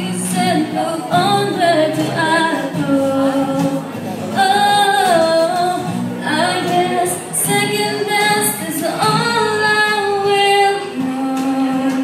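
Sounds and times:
acoustic guitars: 0.0 - 12.0.

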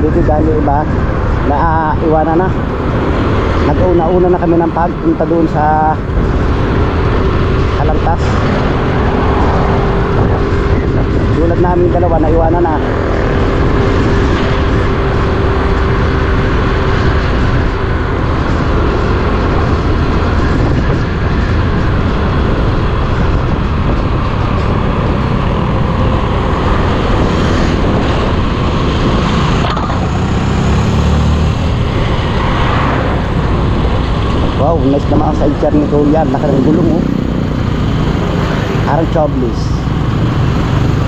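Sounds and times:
motorcycle engine running: 0.0 - 41.0
wind rushing over microphone: 0.0 - 41.0.

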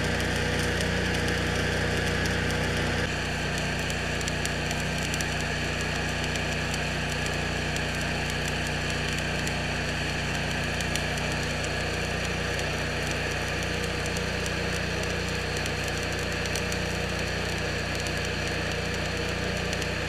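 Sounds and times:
steady low hum: 0.0 - 20.0
welding arc crackling and sizzling: 0.0 - 20.0.

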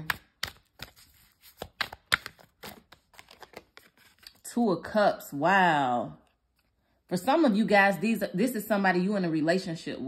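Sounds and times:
cards shuffled snapping: 0.0 - 4.4.

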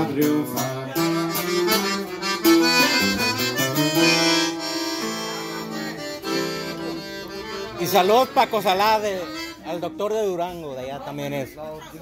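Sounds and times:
strummed acoustic guitar: 0.0 - 10.0
button accordion melody: 0.0 - 10.4.

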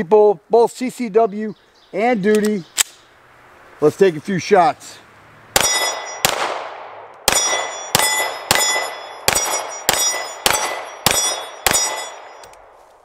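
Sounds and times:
steel plate target ringing: 5.6 - 6.4, 7.3 - 12.5
pistol shots: 5.6 - 12.4.

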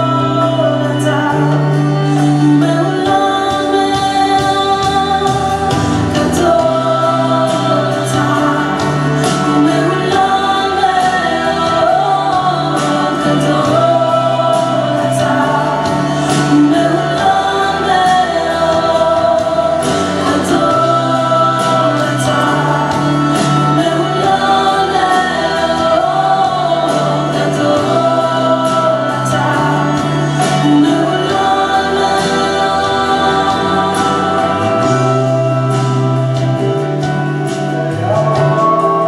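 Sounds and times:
backing voices: 0.0 - 39.0
drums: 0.0 - 39.0
electric guitar: 0.0 - 39.0
woman singing lead: 0.0 - 39.0.

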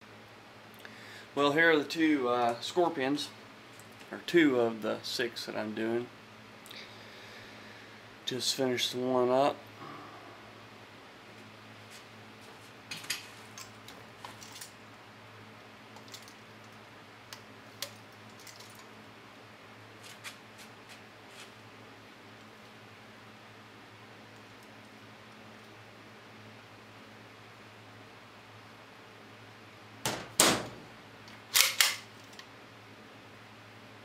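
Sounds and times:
steady low hum: 0.0 - 34.0
guns clicking and knocking on metal: 31.5 - 32.4.

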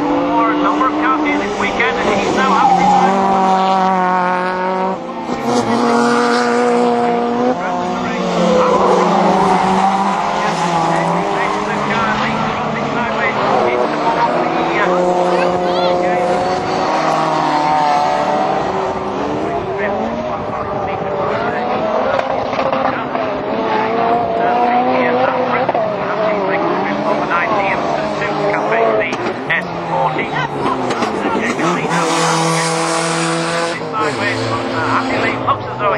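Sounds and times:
race car engines revving: 0.0 - 35.9.

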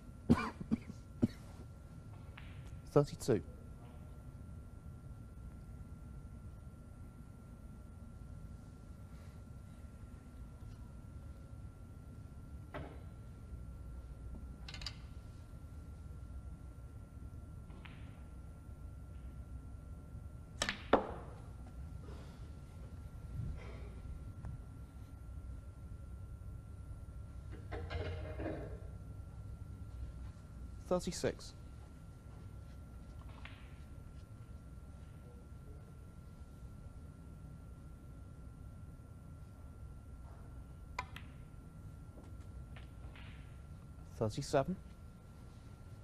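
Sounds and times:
person coughing: 0.3 - 1.6, 23.6 - 24.0
cue ball clicking into ball: 41.0 - 41.4.

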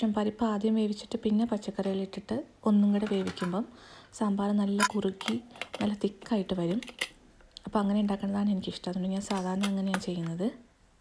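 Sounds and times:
woman speaking: 0.0 - 6.9, 7.6 - 10.7.

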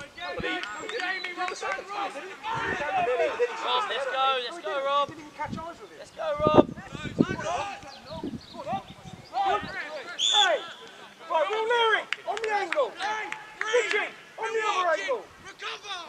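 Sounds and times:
voices shouting: 0.0 - 16.0.

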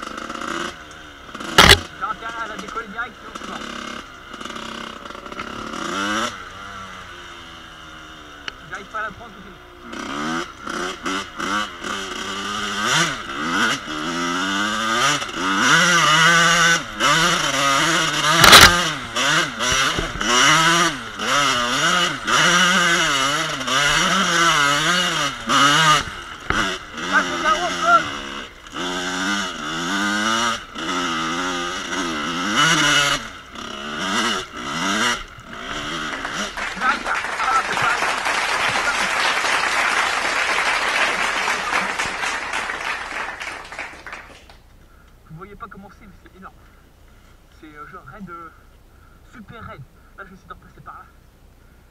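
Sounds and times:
two-stroke motorcycle engine revving: 0.0 - 46.8
sharp knock: 1.5 - 1.9.

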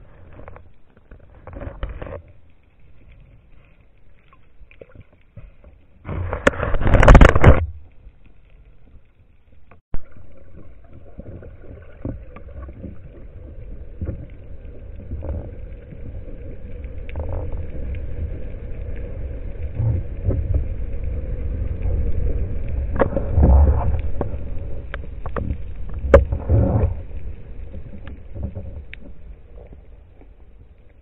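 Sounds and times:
underwater rumble of moving water: 0.0 - 31.0.

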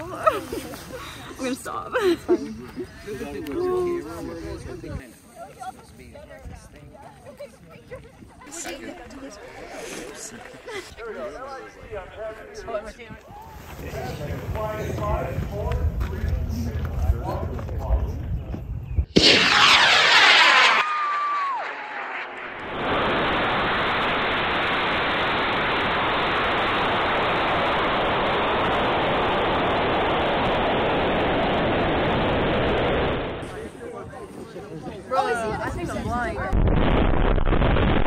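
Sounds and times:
rocket motor roaring at liftoff: 19.2 - 33.6.

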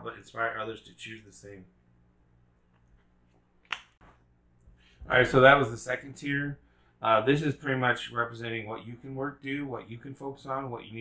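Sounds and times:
low steady hum: 0.0 - 11.0
sharp snap: 3.6 - 4.1.

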